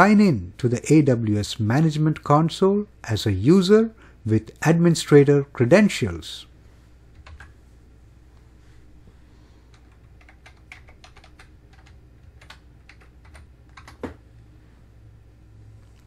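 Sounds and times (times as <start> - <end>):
keyboard typing: 7.1 - 7.6, 9.7 - 14.2.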